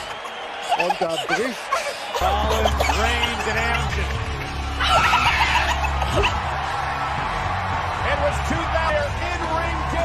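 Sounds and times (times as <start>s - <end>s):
background music: 1.6s - 10.0s.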